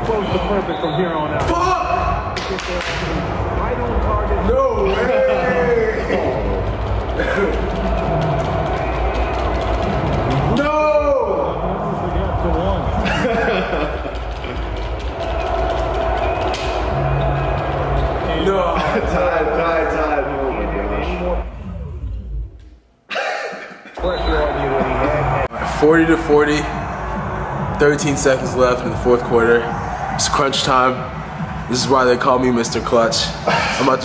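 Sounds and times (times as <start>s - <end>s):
commentary voices: 0.0s - 21.9s
arena crowd noise: 0.0s - 22.0s, 24.0s - 34.0s.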